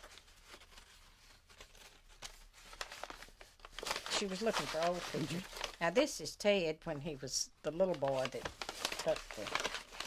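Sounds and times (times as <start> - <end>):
paper rustling and crinkling: 0.0 - 6.0, 7.7 - 10.0.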